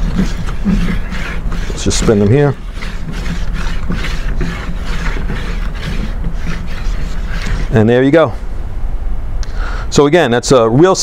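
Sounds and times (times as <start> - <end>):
line winder whirring: 0.0 - 8.4.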